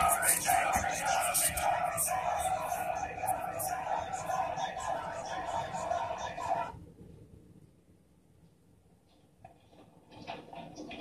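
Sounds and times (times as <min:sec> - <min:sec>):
muffled voices from a screen: 0:00.0 - 0:07.8, 0:08.5 - 0:11.0.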